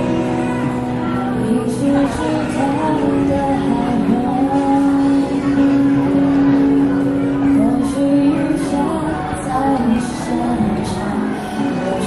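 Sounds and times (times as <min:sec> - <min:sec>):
acoustic guitar: 0:00.0 - 0:12.0
person singing amplified: 0:00.0 - 0:12.0.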